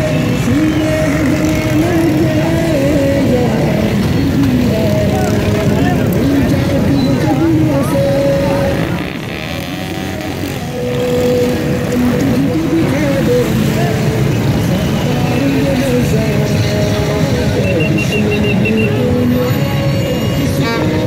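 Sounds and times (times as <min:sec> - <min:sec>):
crowd voices and shouting: 0:00.0 - 0:21.0
motorcycles and cars passing: 0:00.0 - 0:21.0.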